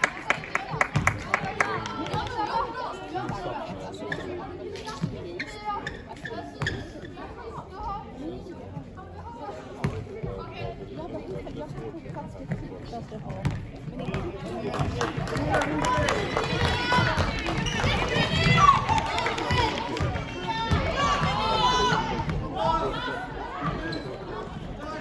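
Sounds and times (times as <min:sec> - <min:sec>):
people calling and shouting: 0:00.0 - 0:25.0.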